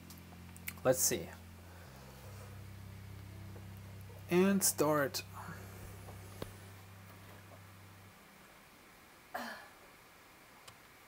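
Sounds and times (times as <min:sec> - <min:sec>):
low steady hum: 0:00.0 - 0:11.0
throat clearing: 0:09.4 - 0:09.8.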